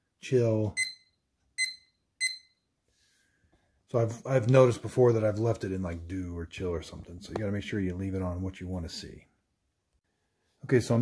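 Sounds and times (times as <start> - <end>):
short electronic beeps: 0.7 - 2.7.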